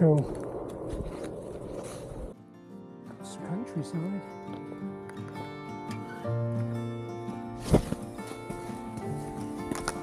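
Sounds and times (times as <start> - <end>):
footsteps rustling through grass: 0.2 - 2.4, 7.4 - 10.0
plucked string music: 2.4 - 10.0.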